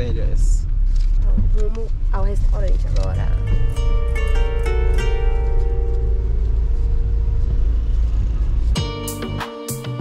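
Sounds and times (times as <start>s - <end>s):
car engine rumble: 0.0s - 9.4s
road noise: 0.0s - 9.5s
music with plucked guitar notes: 3.0s - 7.8s.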